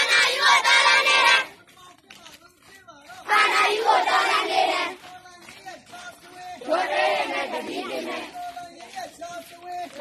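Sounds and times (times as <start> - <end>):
crowd chanting slogan: 0.0 - 1.6, 3.1 - 10.0.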